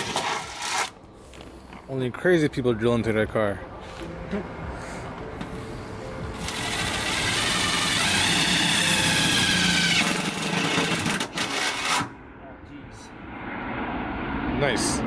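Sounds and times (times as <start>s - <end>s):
drill boring through sheet metal: 6.4s - 12.1s.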